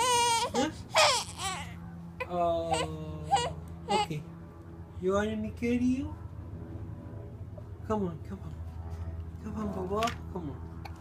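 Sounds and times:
infant crying: 0.0s - 4.2s.

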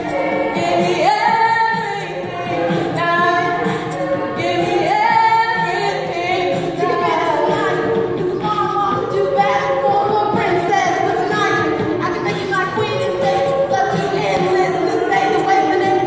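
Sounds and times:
choir singing in harmony: 0.0s - 16.0s.

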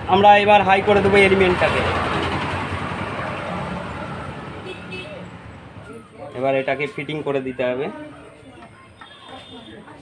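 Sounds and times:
road vehicle passing by: 0.0s - 8.2s.

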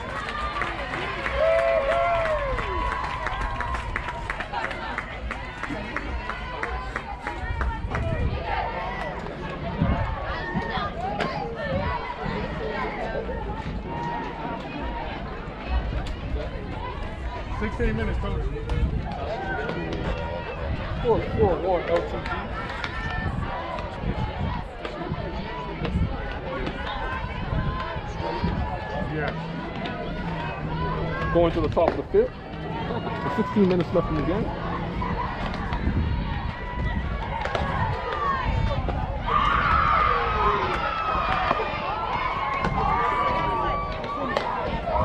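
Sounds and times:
overlapping talk and calls: 0.0s - 45.0s.

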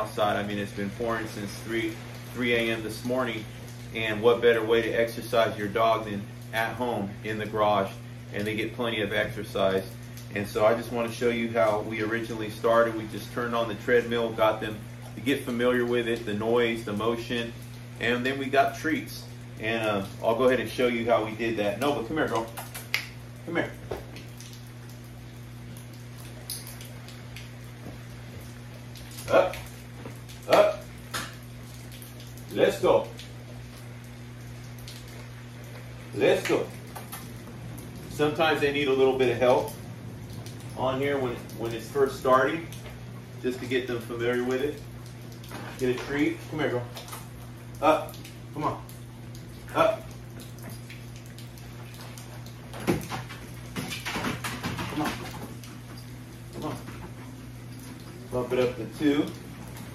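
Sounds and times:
faint rain hiss: 0.0s - 59.9s
steady low hum: 0.0s - 59.9s.

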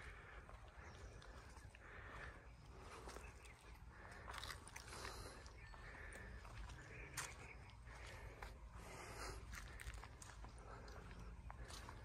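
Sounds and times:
faint outdoor ambience: 0.0s - 12.0s.

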